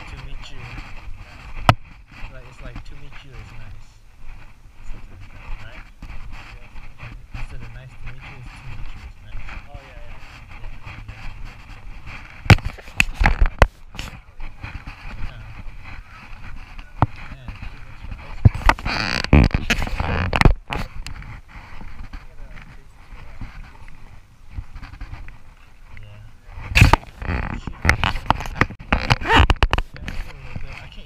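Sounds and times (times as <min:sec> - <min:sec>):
people talking: 0:00.0 - 0:01.5, 0:02.2 - 0:04.0, 0:04.8 - 0:05.9, 0:06.5 - 0:11.5, 0:14.0 - 0:15.6, 0:16.8 - 0:18.6, 0:22.2 - 0:24.0, 0:25.9 - 0:26.9, 0:27.5 - 0:27.9, 0:29.9 - 0:31.0.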